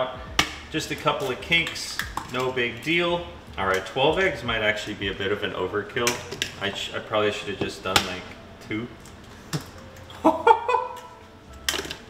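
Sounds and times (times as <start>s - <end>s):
eggshell cracking: 0.4s - 2.6s.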